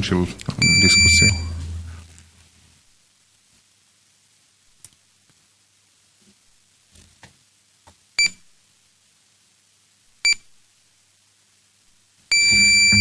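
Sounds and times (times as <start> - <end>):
longer electronic beep: 0.6 - 1.7, 12.3 - 13.0
short high beeps: 0.6 - 1.7, 12.3 - 13.0.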